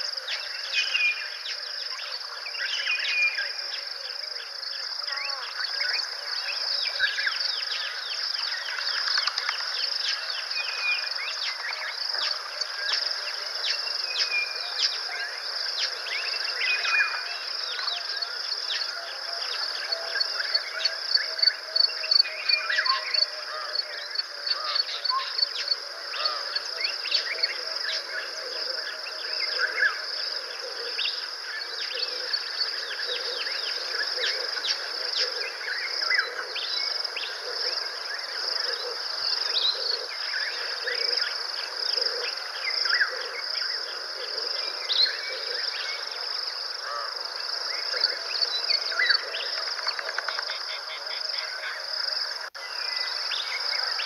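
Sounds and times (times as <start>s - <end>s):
insect drone: 0.0s - 54.0s.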